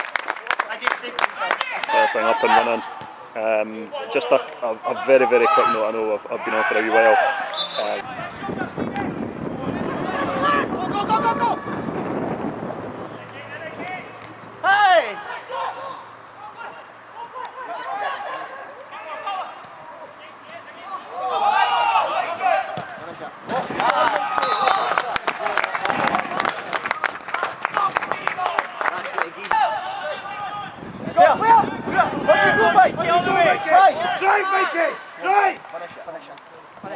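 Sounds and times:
players and spectators shouting: 1.4 - 3.2, 3.9 - 12.1, 13.2 - 26.5, 27.3 - 36.9.

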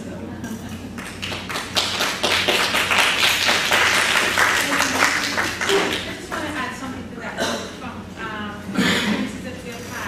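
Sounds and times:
indistinct speech in large room: 0.0 - 10.0
steady low hum: 0.0 - 10.0.

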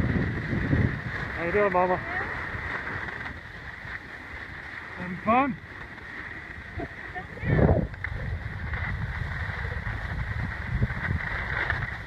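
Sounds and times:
wind on microphone: 0.0 - 4.4, 6.3 - 12.0
skis gliding over snow: 0.0 - 12.0.

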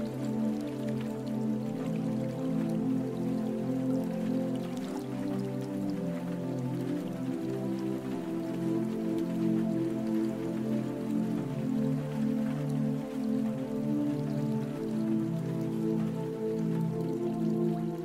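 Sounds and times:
slow calm instrumental music: 0.0 - 18.0.

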